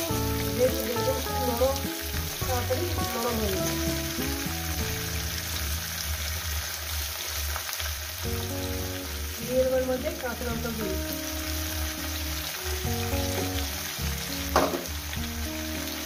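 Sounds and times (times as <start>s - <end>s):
background music with melody: 0.0s - 16.0s
vegetables sizzling in oil: 0.0s - 16.0s.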